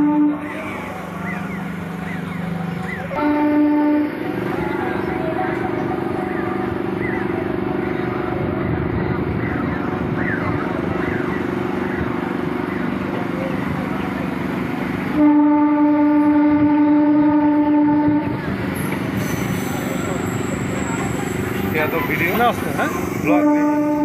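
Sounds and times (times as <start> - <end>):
train horn blast: 0.0 - 0.8, 3.1 - 4.6, 15.1 - 18.5, 23.2 - 24.0
train rumbling on track: 0.0 - 24.0.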